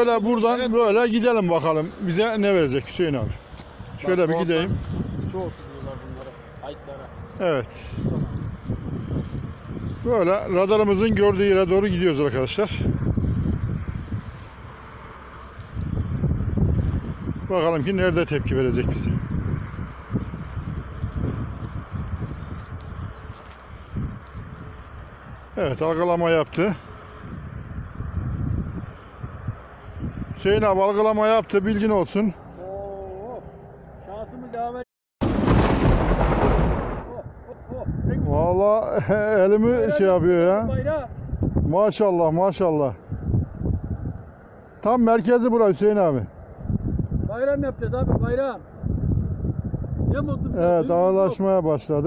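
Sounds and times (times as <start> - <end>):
wind buffeting microphone: 0.0 - 33.0, 35.2 - 52.0
thunder rumbling crash: 35.2 - 37.2.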